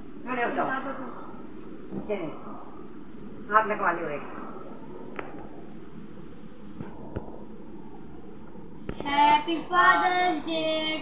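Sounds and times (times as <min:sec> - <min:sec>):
room background noise: 0:00.0 - 0:11.0.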